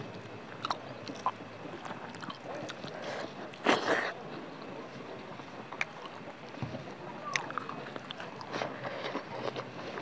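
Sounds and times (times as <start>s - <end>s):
chewing with wet mouth clicks: 0.2s - 4.7s, 5.6s - 6.6s, 7.2s - 10.0s.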